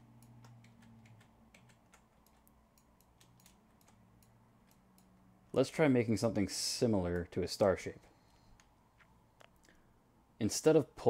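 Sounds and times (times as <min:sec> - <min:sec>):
keyboard keys tapping: 0:00.0 - 0:05.2.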